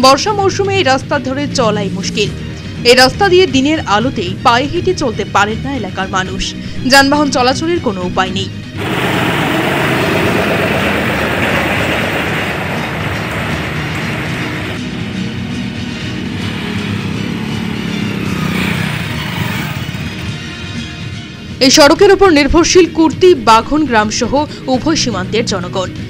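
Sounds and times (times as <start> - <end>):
background music: 0.0 - 26.0
auto-rickshaw engine in mud: 8.8 - 20.5
motorcycle engine: 8.8 - 21.3.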